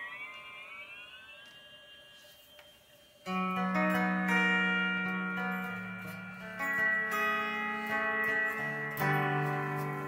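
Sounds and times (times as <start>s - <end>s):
guitar tone through effects pedal: 0.0s - 10.0s.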